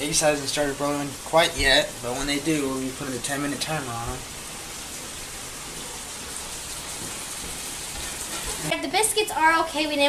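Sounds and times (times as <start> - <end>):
sausage sizzling in a skillet: 0.0 - 10.0.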